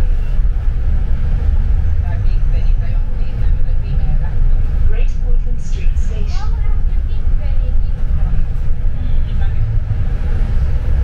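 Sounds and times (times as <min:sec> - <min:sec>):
bus rumble inside cabin: 0:00.0 - 0:11.0.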